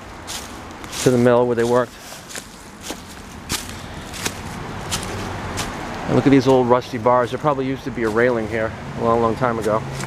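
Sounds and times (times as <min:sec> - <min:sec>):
footsteps through dry leaves: 0:00.0 - 0:08.6.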